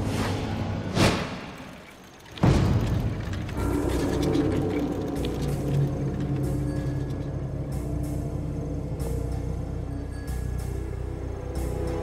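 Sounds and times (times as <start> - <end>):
sustained low drone: 3.5 - 12.0.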